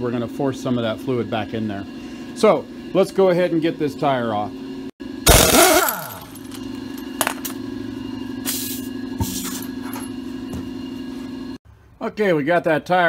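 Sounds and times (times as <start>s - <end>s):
impact wrench buzzing: 5.1s - 10.9s.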